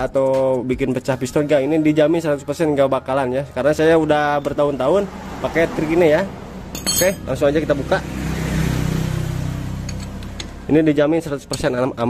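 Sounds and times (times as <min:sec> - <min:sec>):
vehicle engine driving past: 0:03.9 - 0:10.9.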